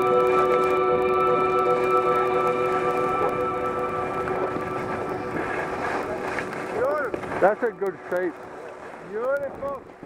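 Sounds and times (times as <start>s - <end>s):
background music: 0.0s - 6.0s
skis sliding on snow: 4.8s - 9.8s.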